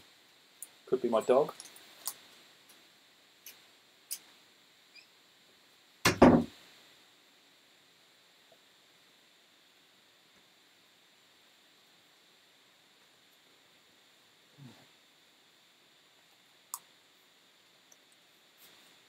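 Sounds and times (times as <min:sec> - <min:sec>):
wooden door thud: 0:06.1 - 0:06.5.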